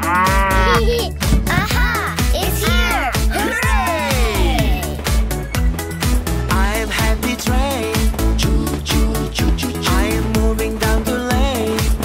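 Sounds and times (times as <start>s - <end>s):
cartoon cow mooing: 0.0s - 0.8s
children's song with drum beat: 0.0s - 12.0s.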